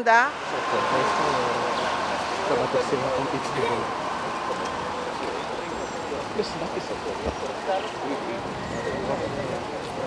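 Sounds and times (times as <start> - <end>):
indistinct voices: 0.0 - 10.0
street traffic: 0.0 - 10.0.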